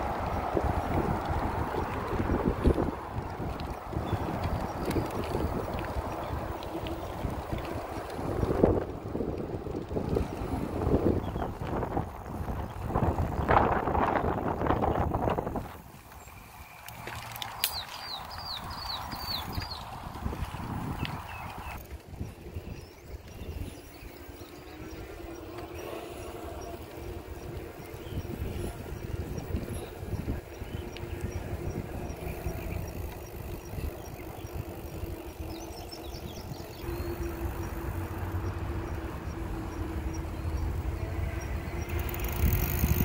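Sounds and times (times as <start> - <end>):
bicycle tyres on pavement: 0.0 - 43.0
wind buffeting microphone: 0.0 - 43.0.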